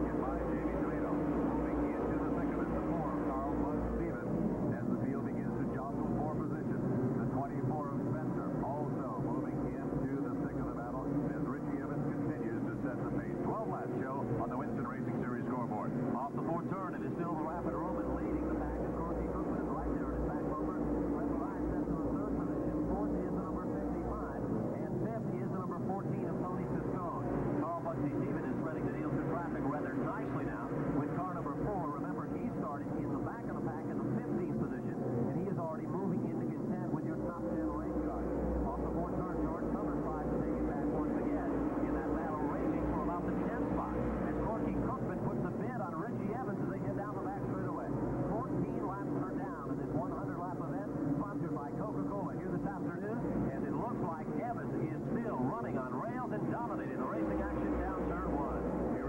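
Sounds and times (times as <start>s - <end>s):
race car engines droning: 0.0s - 59.0s
voices: 0.0s - 59.0s.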